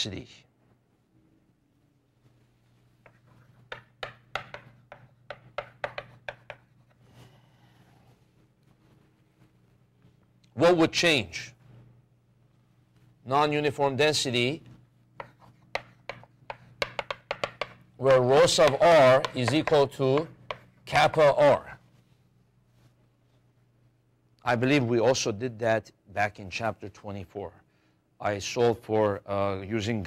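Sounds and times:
chalk writing on chalkboard: 3.0s - 7.0s, 15.2s - 20.7s.

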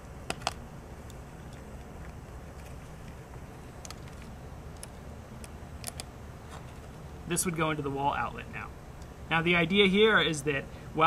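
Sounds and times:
low background rumble: 0.0s - 11.0s
battery clamp leads clicking: 3.8s - 6.1s.

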